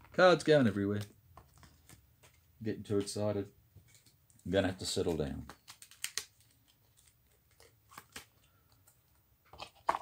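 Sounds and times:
playing cards shuffled: 3.8s - 8.9s.

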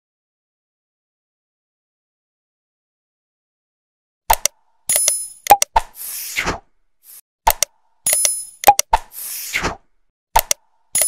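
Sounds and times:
sharp pops and clicks: 4.3s - 6.0s, 7.5s - 9.2s, 10.3s - 11.0s.

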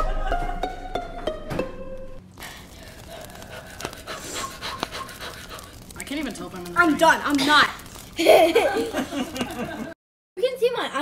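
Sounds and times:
person panting hard: 2.4s - 5.9s.

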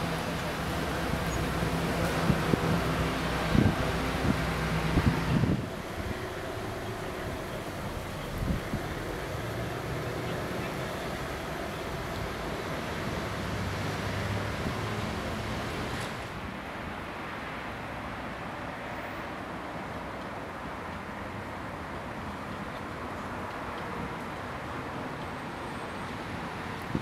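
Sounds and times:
vehicle engine idling: 0.0s - 15.9s
outdoor rumble: 0.0s - 16.4s
wind on microphone: 1.9s - 9.6s.

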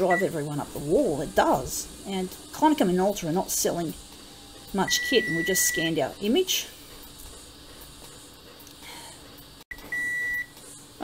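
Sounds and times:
copier high beep: 0.0s - 1.4s, 3.4s - 6.4s, 9.7s - 10.6s.

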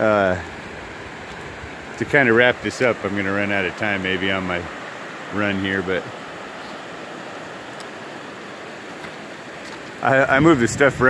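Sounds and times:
river rushing over rocks: 0.0s - 10.7s.

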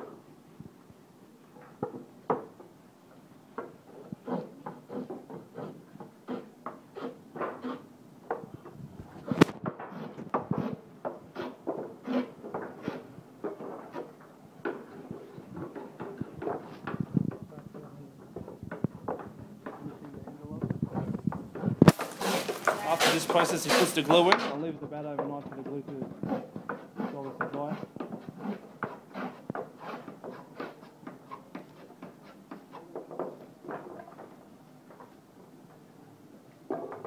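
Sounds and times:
sharp loud wooden crack: 9.2s - 10.7s, 21.8s - 24.5s
wooden knocks and taps: 18.2s - 22.0s.

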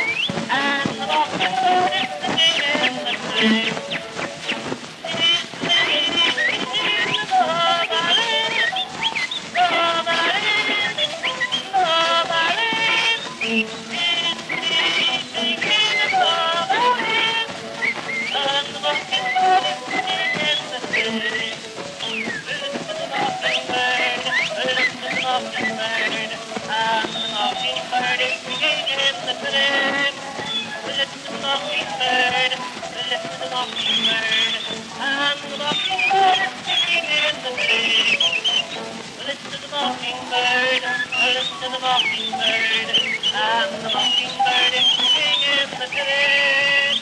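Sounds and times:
person whistling birdsong: 0.0s - 0.4s, 5.9s - 16.5s, 17.7s - 29.5s, 30.4s - 31.9s, 32.5s - 39.0s, 40.7s - 47.0s
recording hiss: 0.0s - 47.0s.

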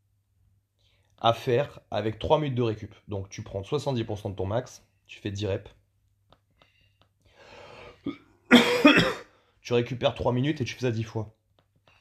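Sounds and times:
faint breath in: 6.6s - 8.1s
man coughing: 8.0s - 9.4s.

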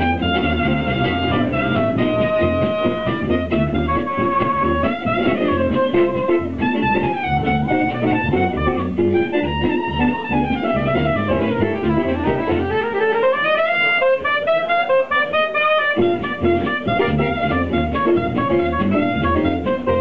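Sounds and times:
double bass: 0.0s - 12.9s, 16.0s - 20.0s
acoustic guitar: 0.0s - 15.3s, 16.0s - 20.0s
soprano saxophone solo: 0.0s - 20.0s.

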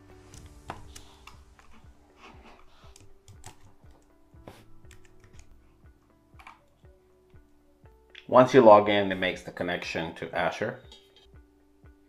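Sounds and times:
quiet background music: 0.0s - 12.0s
faint keyboard typing: 0.3s - 1.8s, 2.6s - 4.1s, 4.8s - 5.6s.

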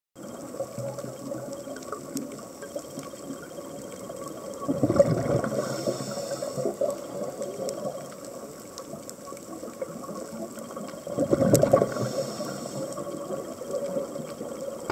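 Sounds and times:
steady hiss: 0.2s - 14.9s
underwater breath bubbles: 4.4s - 8.2s, 11.1s - 14.9s.

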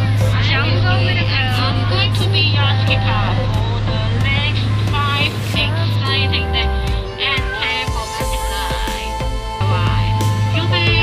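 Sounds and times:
boat motor humming: 0.0s - 11.0s
voices: 0.0s - 11.0s.

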